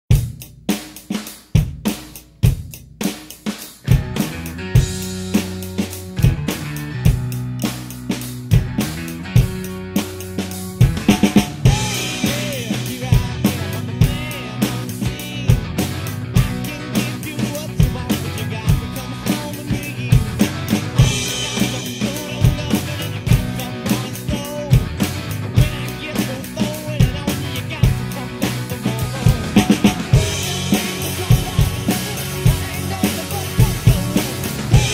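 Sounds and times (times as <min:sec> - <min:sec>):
acoustic drum kit playing: 0:00.1 - 0:34.9
rock backing track: 0:00.1 - 0:34.9.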